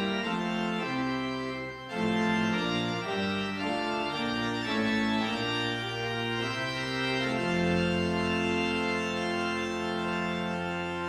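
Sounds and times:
church organ chords: 0:00.0 - 0:11.0.

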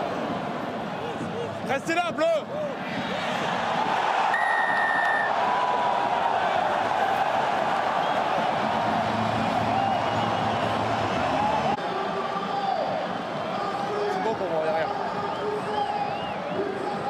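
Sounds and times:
stadium crowd cheering: 0:00.0 - 0:17.0
whistle blast: 0:04.3 - 0:05.3.

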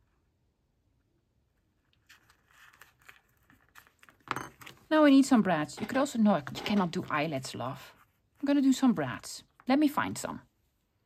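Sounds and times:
paper envelope rustling: 0:01.6 - 0:04.9.

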